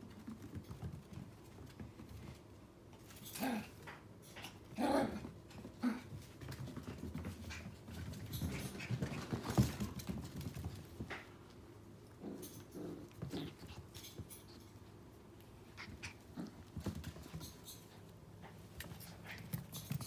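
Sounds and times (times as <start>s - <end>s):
puppies play-fighting: 0.1s - 20.0s.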